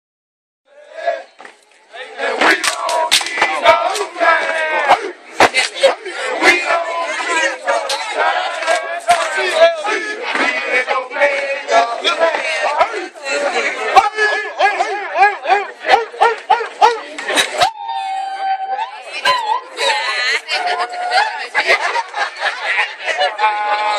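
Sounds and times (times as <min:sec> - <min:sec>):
men shouting and chanting: 0:00.7 - 0:23.9.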